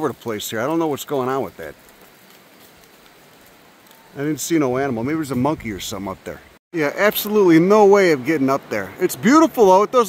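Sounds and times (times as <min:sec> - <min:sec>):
small stones trickling down slope: 0:00.0 - 0:10.0.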